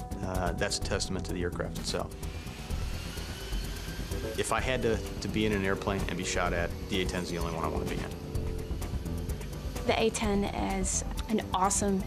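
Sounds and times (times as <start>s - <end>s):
background music: 0.0s - 12.0s
jet turbofan whine: 1.5s - 10.8s.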